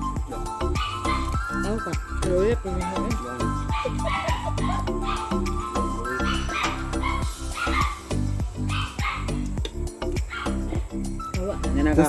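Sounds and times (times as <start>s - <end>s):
background music with beat: 0.0s - 12.0s
dog barking and yipping: 0.6s - 1.6s, 3.6s - 9.4s, 10.2s - 10.9s.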